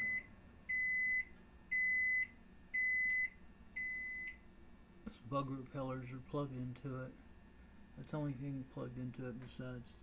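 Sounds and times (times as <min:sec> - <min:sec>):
microwave oven beeping: 0:00.0 - 0:10.0.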